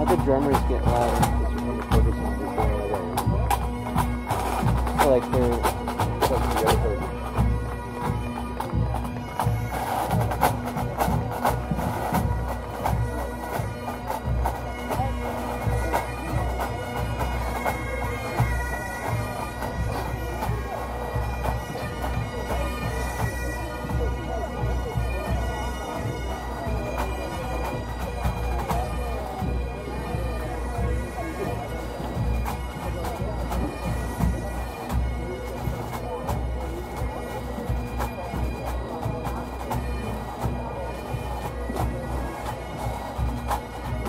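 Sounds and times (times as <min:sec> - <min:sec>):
bagpipes with drones: 0:00.0 - 0:44.0.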